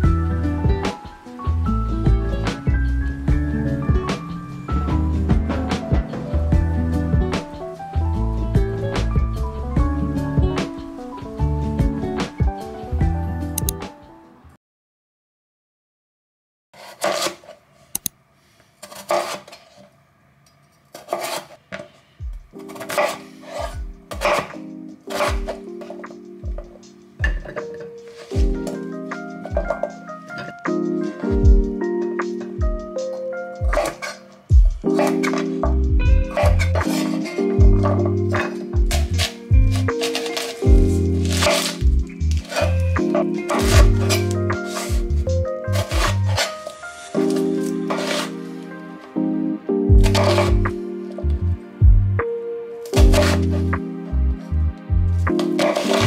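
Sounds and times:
soft background music: 0.0s - 14.6s, 21.3s - 56.0s
knife cutting on wooden board: 16.8s - 17.5s, 18.8s - 19.6s, 20.9s - 21.8s, 22.6s - 25.6s, 33.7s - 34.2s, 34.9s - 35.6s, 36.2s - 45.1s, 45.7s - 48.4s, 50.0s - 50.7s, 53.0s - 53.7s, 55.3s - 56.0s.

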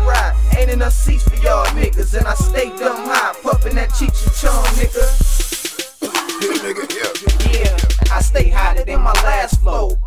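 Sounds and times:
heavy bass beat with drums: 0.0s - 10.0s
person rapping: 0.0s - 10.0s.

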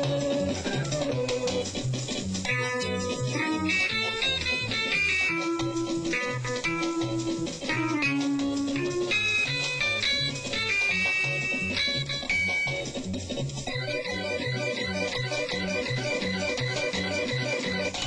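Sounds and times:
keyboard playing a tune: 0.0s - 18.0s.

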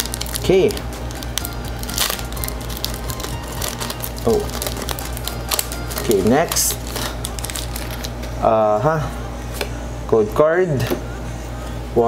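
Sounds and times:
background music: 0.0s - 8.2s
foil wrapper crinkling: 0.0s - 8.4s.

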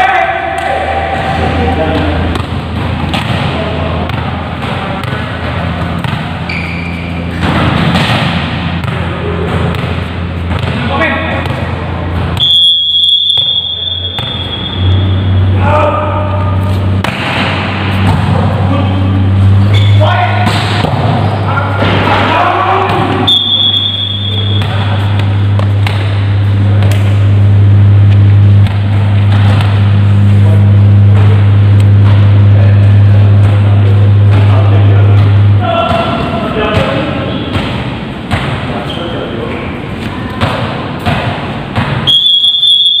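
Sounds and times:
volleyballs hit and bouncing: 0.0s - 15.3s, 16.0s - 43.0s
whistle blown: 12.4s - 15.5s, 23.2s - 25.0s, 42.0s - 43.0s
players shouting: 19.7s - 25.4s, 35.5s - 37.5s.

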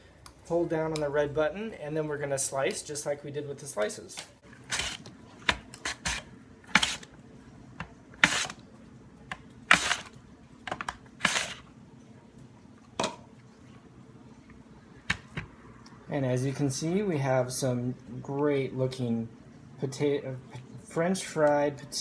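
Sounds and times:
potato cutting scrapes: 5.8s - 7.1s, 8.2s - 8.6s.

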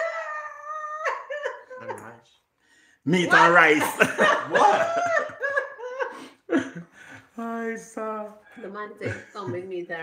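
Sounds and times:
man laughing: 3.4s - 7.1s.

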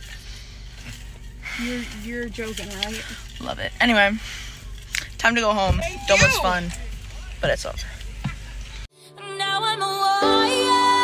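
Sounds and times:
low hum inside car: 0.0s - 8.9s
young woman speaking: 1.6s - 4.2s, 5.2s - 6.8s.

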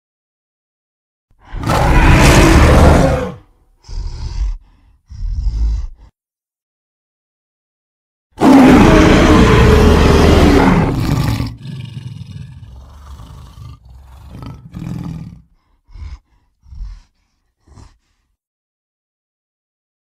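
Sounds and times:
low rumbling growls: 1.4s - 6.1s, 8.4s - 17.1s
monster roar: 1.4s - 6.1s, 8.4s - 18.0s.

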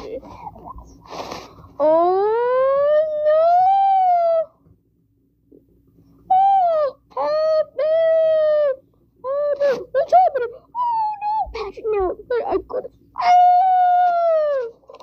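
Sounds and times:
child wailing: 1.8s - 4.6s, 6.3s - 14.8s.

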